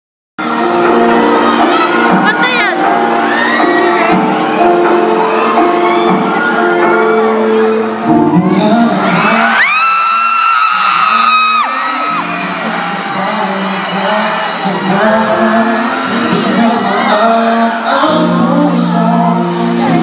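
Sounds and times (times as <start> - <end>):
crowd screaming: 0.4 - 20.0
live pop music: 0.4 - 20.0.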